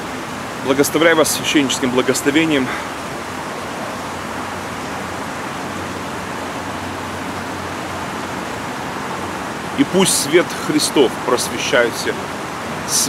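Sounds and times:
steady rushing background noise: 0.0 - 13.0
man's voice: 9.8 - 12.2.

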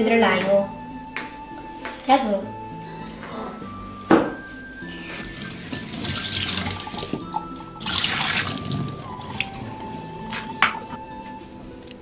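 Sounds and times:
tap water running into a bowl: 5.3 - 10.5.

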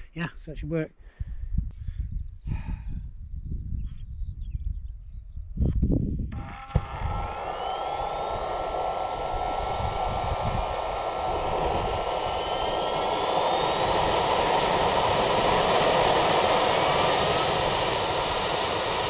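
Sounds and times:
jet turbine spooling up: 6.3 - 19.0.

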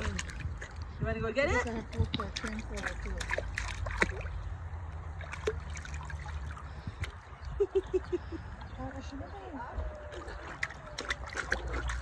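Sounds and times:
water splashing in a pool: 0.0 - 12.0.

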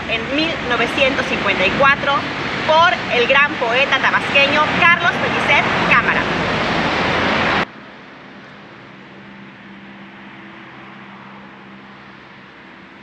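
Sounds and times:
loud rushing noise: 0.0 - 13.0.

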